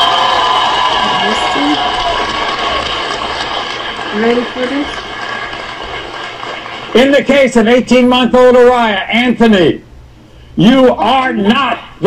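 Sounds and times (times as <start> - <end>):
crowd shouting and chattering: 0.0 - 5.1.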